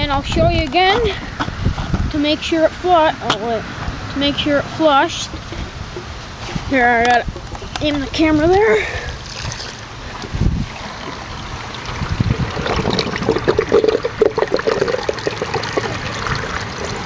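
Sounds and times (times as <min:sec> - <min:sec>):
water running from hose: 0:07.2 - 0:17.0
water gurgling down drain: 0:09.2 - 0:17.0.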